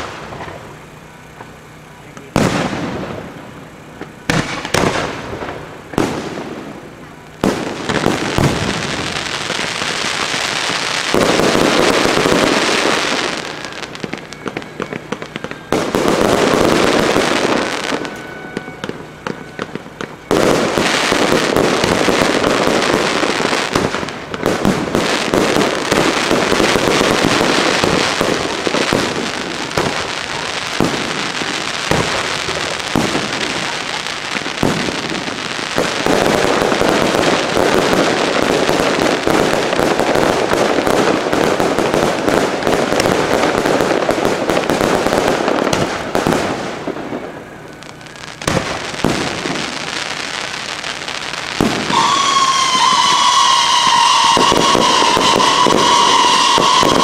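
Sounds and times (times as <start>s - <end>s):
fireworks crackling: 0.0s - 57.0s
fireworks shells bursting: 0.0s - 57.0s.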